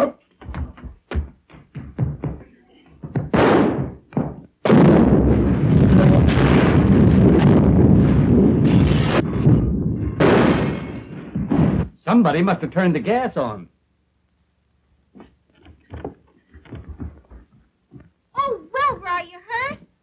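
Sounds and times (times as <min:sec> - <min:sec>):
short bangs: 0:03.1 - 0:12.0
gas explosion blast: 0:03.3 - 0:04.0, 0:04.6 - 0:12.0.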